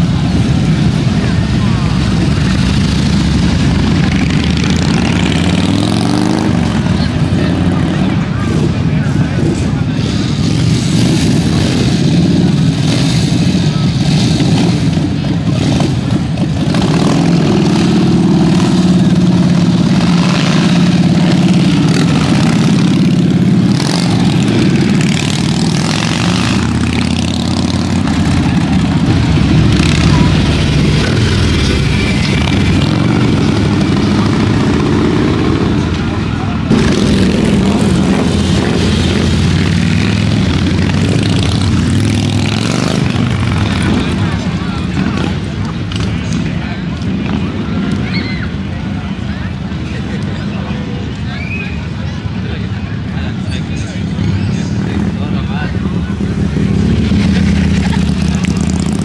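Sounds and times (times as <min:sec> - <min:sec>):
motorcycles revving and riding off: 0:00.0 - 0:59.0
voices: 0:00.0 - 0:59.0.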